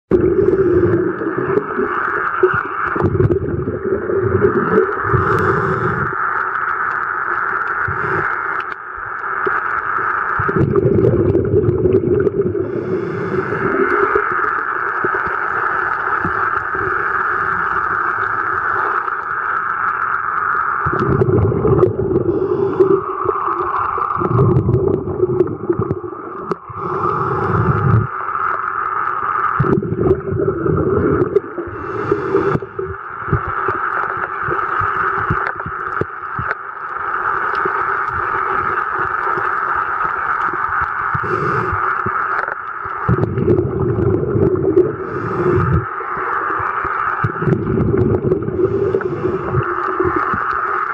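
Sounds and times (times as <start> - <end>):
steady underwater drone: 0.1 - 50.9.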